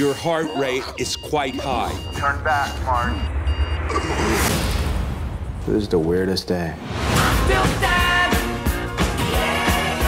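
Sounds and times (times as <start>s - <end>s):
electronic warning beeps: 0.0s - 4.5s.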